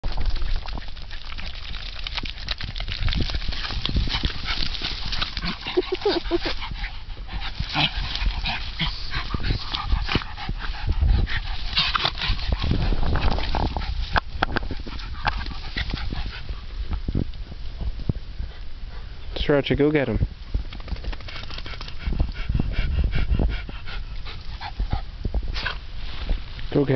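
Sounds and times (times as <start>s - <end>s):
grass rustling: 0.0s - 19.7s, 23.3s - 26.9s
dog vocal noises: 3.3s - 16.7s.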